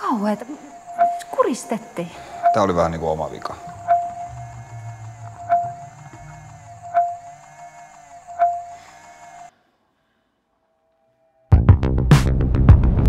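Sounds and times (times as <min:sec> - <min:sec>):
low drone with pulsing ringing tone: 0:00.0 - 0:09.5.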